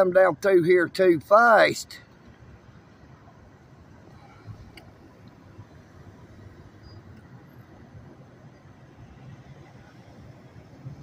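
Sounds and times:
distant traffic rumble: 0:00.0 - 0:11.0.

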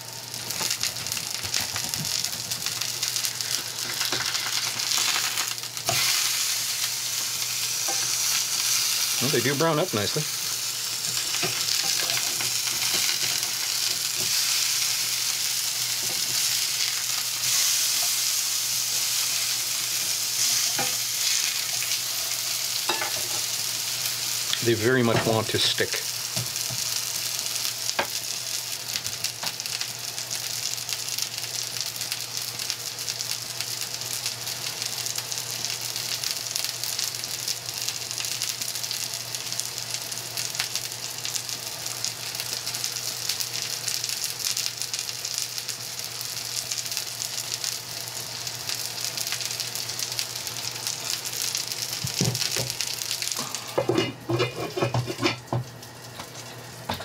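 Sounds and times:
patties sizzling in skillet: 0:00.0 - 0:57.0
metal lid clanking on pan: 0:53.4 - 0:55.4.

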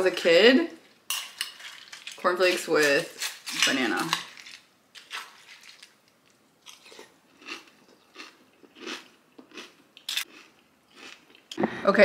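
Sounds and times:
person chewing cereal: 0:04.3 - 0:11.6.

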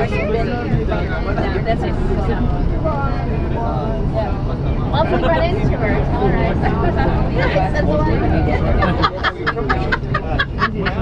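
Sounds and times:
bus engine and road rumble: 0:00.0 - 0:11.0
people talking: 0:00.0 - 0:11.0.

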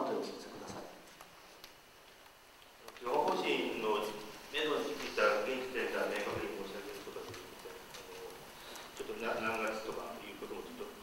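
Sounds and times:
man speaking into a microphone: 0:02.9 - 0:08.4, 0:09.0 - 0:11.0.

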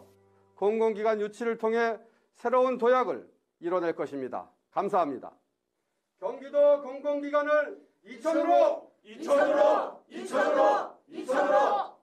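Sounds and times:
group shouting in unison: 0:08.2 - 0:12.0.

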